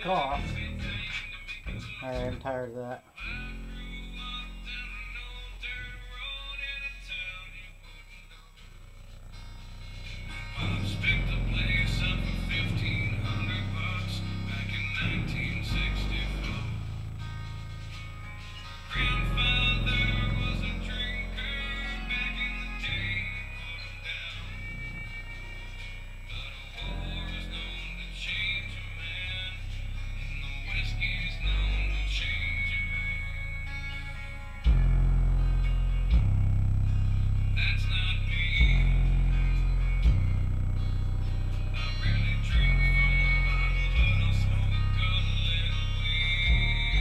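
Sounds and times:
bass-heavy music through subwoofer: 0.0s - 47.0s.

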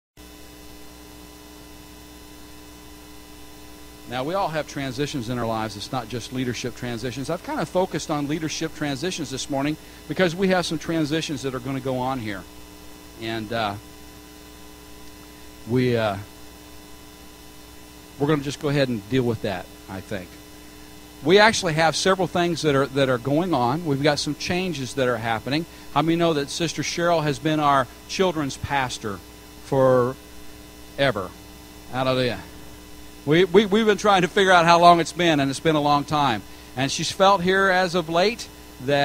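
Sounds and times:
electrical mains hum: 0.2s - 39.0s
man preaching: 4.1s - 12.4s, 13.2s - 13.8s, 15.7s - 16.3s, 18.2s - 20.3s, 21.2s - 30.2s, 31.9s - 32.5s, 33.3s - 39.0s.

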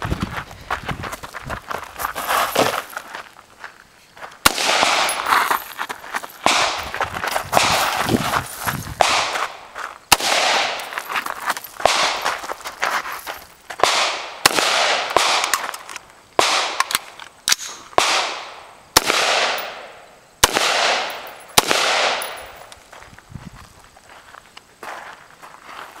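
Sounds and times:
rifle shots echoing: 4.4s - 5.3s, 6.4s - 6.9s, 9.0s - 10.9s, 11.8s - 12.2s, 13.8s - 15.6s, 16.4s - 22.6s.

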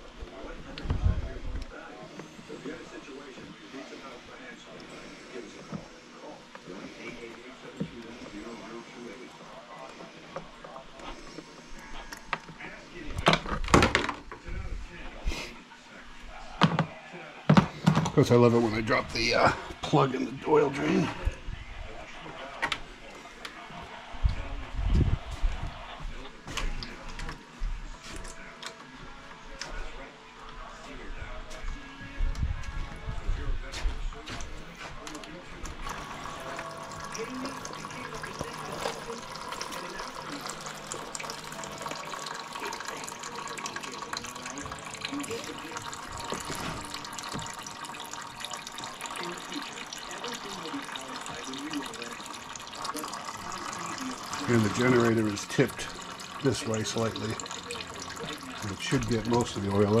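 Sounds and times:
oil pouring into a pan: 35.8s - 60.0s.

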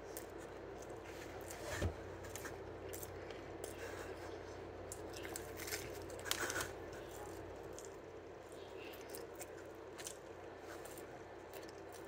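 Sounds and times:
pizza crust crunching: 0.0s - 12.0s.

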